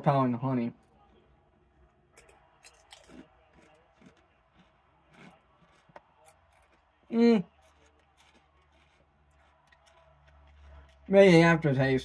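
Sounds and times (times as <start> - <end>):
potato chip crunching: 2.1 - 11.6.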